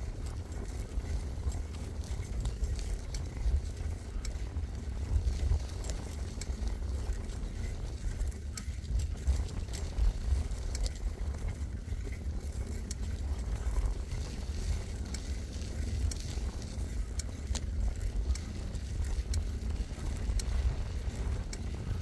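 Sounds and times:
bicycle tyres rolling: 0.0 - 22.0
bike clicks and rattles: 0.0 - 22.0
wind on microphone: 0.0 - 22.0.

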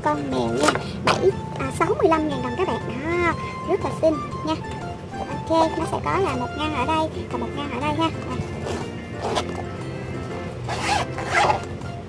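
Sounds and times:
zipper being pulled: 8.5 - 9.7, 10.6 - 11.7.

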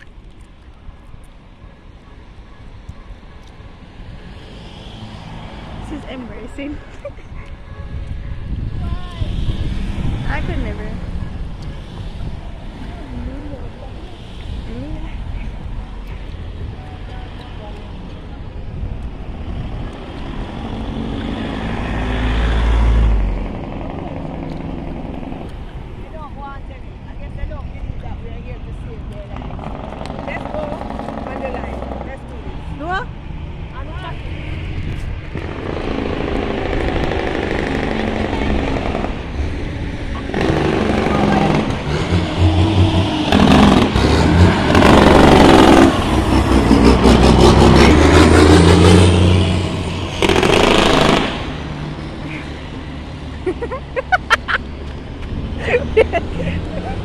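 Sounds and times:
cars passing on road: 0.0 - 57.0
people's voices: 10.2 - 20.8, 37.6 - 42.2.

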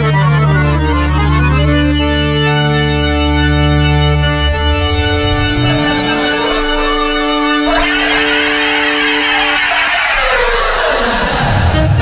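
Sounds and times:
held two-note chord: 2.0 - 9.2
whoosh falling in pitch: 4.0 - 11.4.

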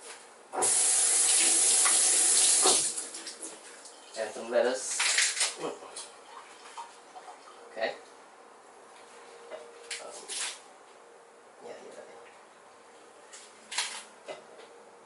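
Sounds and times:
tap running hard: 1.4 - 3.0.

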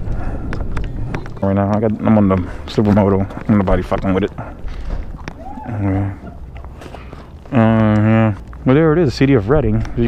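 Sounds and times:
wind: 0.0 - 10.0
man talking: 1.4 - 4.6, 7.5 - 10.0.

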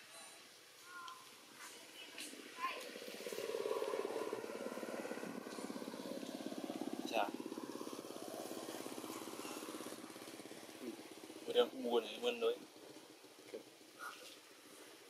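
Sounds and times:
small engine running: 2.3 - 15.0.

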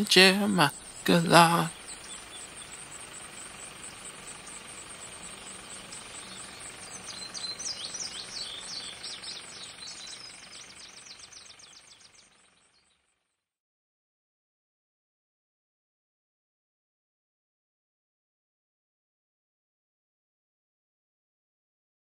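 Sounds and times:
birds chirping: 0.0 - 13.0
faint outdoor background: 0.0 - 13.6.

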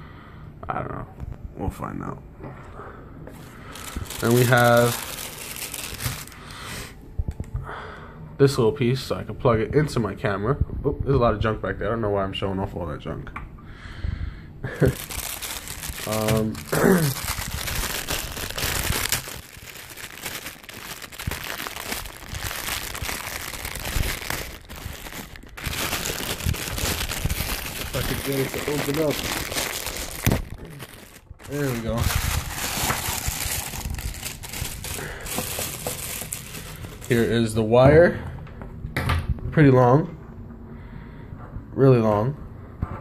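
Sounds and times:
plastic packaging crinkling: 3.4 - 6.5, 14.7 - 37.6.

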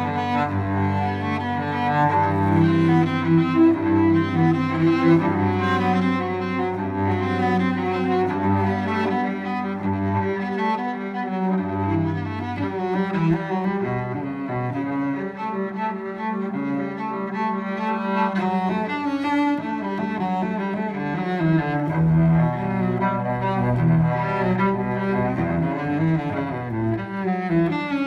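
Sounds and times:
bowed cello melody: 0.0 - 28.0.

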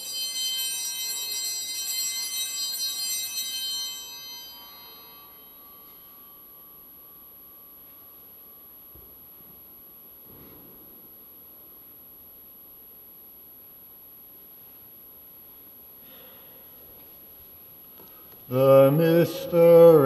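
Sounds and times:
altar bells ringing: 0.0 - 8.9.

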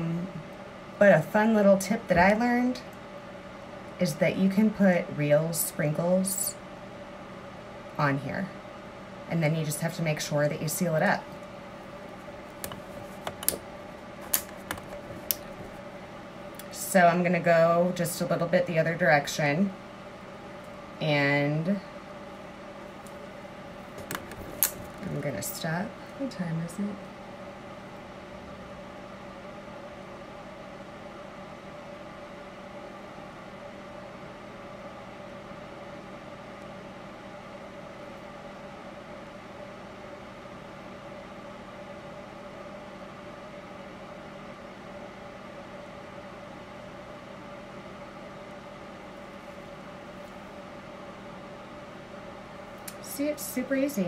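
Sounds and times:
mechanical hum of motor: 0.0 - 54.0.

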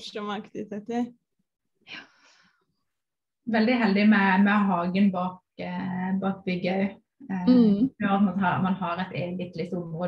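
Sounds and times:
person speaking: 7.3 - 8.1.

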